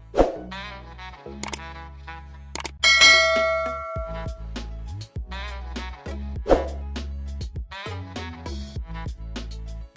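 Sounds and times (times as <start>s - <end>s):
background music with bass line: 0.0s - 9.9s
bell ding: 2.8s - 4.4s.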